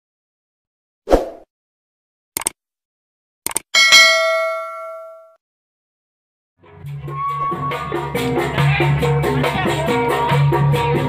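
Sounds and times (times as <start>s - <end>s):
bright notification ding: 3.8s - 5.3s.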